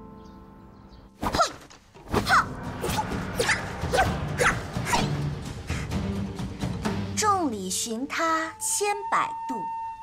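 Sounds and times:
light background music: 0:02.0 - 0:10.0.

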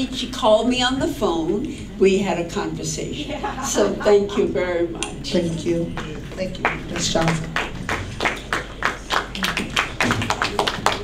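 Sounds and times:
audience clapping: 0:05.9 - 0:11.0.

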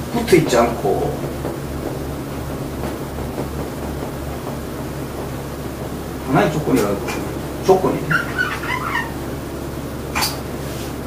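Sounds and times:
whiteboard eraser squeaking: 0:06.7 - 0:09.3.

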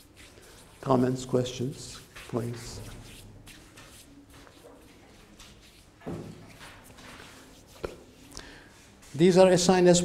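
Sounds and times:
soft scrapes: 0:00.0 - 0:09.3.

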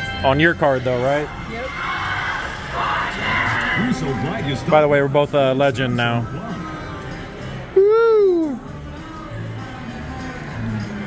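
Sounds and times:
background music: 0:00.0 - 0:11.0
crowd chatter: 0:00.0 - 0:11.0.

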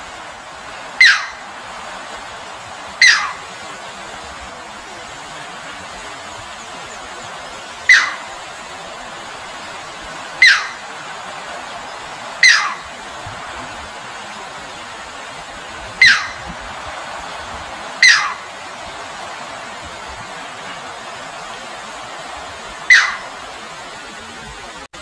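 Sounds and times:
water flowing: 0:00.0 - 0:25.0
bird calling: 0:00.9 - 0:01.6, 0:02.8 - 0:03.9, 0:04.9 - 0:09.0, 0:10.1 - 0:13.2, 0:15.9 - 0:21.6, 0:22.8 - 0:23.6.

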